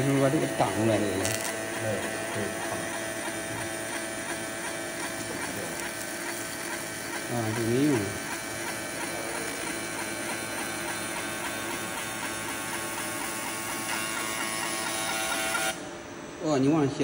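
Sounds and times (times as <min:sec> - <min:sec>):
laser engraver electrical buzz: 0:00.0 - 0:17.0.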